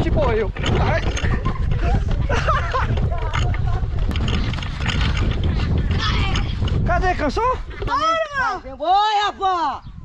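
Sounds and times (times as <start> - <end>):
wind rumble: 0.0 - 10.0
laughter: 1.3 - 3.2.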